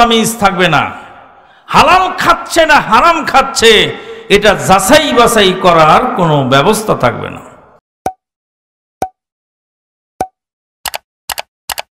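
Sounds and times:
quick double clicks: 10.9 - 11.9.

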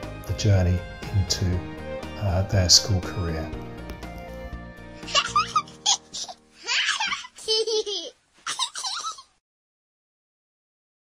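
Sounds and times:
background music: 0.0 - 7.8
children laughing and giggling: 5.0 - 9.4.

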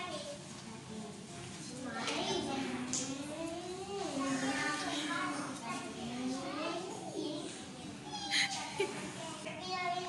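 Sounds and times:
young children squealing: 8.0 - 8.8.

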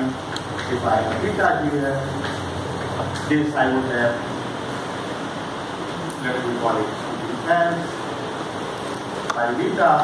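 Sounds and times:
room background hiss: 0.0 - 10.0.

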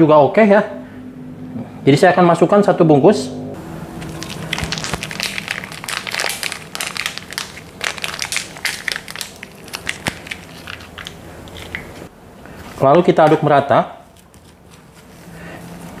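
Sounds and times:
plastic foil sachet crinkling: 4.0 - 11.9.

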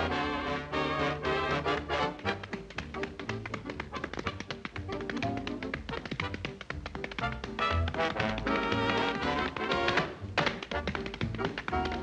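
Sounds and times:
background music: 0.0 - 12.0
tap shoes on concrete: 1.0 - 12.0.

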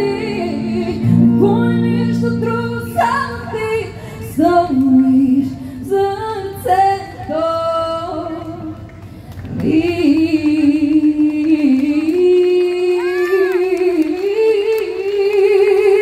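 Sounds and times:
woman singing into microphone: 0.0 - 8.8, 9.5 - 16.0.

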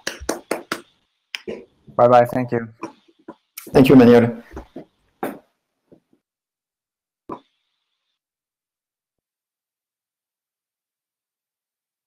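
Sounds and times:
person clapping hands: 0.0 - 1.5.

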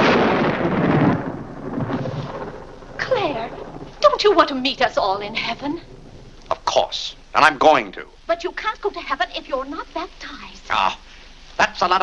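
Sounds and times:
thunder rumble: 0.0 - 9.9.

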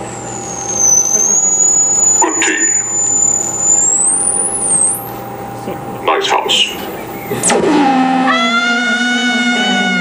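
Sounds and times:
high whistle sliding up: 0.0 - 5.3, 7.5 - 10.0
radio static hiss: 2.0 - 7.5.

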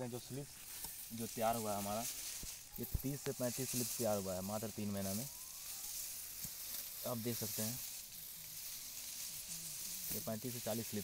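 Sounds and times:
steady high hiss: 0.0 - 11.0
distant voices murmuring: 1.0 - 11.0.

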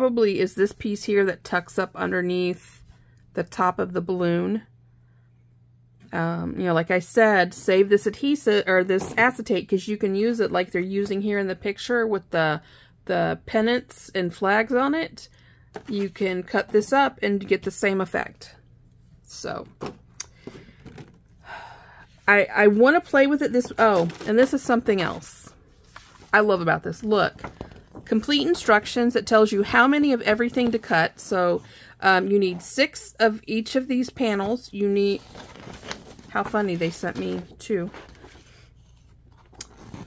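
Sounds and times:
low steady hum: 0.0 - 40.0
soft breath: 20.3 - 22.3
metal and paper handling noise: 22.6 - 31.2, 34.4 - 40.0.

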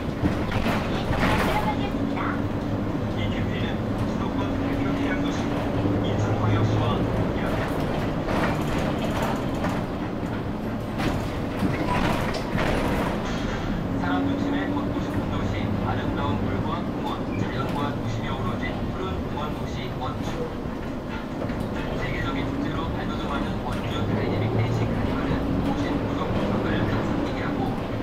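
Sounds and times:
bus engine and road noise: 0.0 - 28.0.

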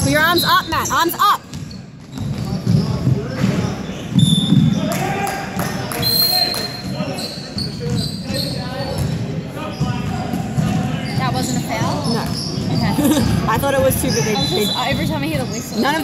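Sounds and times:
sneaker squeaks: 0.0 - 5.0, 5.9 - 16.0
players' voices echoing: 0.0 - 16.0.

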